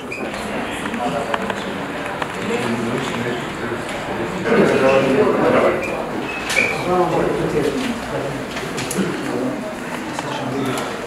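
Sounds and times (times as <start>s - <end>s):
overlapping voices in a room: 0.0s - 11.0s.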